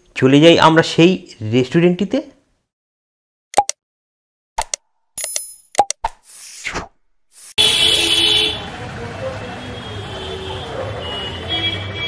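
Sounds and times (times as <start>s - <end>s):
busy street traffic: 7.6s - 12.0s.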